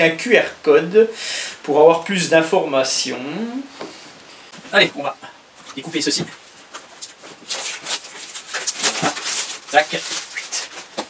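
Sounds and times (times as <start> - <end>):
plastic packaging crinkling: 5.6 - 11.0.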